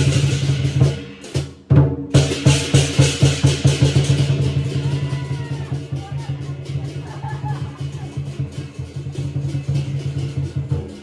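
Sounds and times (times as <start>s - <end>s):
cymbals clashing: 0.0s - 1.6s, 2.2s - 11.0s
drum beating: 0.0s - 11.0s.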